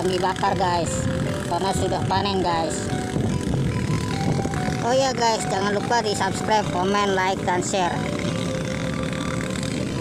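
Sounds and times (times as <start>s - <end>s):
motorcycle engine running: 0.0s - 10.0s
wind noise: 0.5s - 4.9s.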